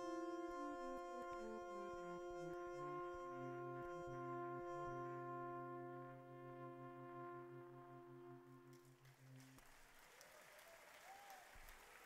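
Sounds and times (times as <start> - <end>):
held music chord: 0.0 - 8.9
faint applause: 8.9 - 12.0.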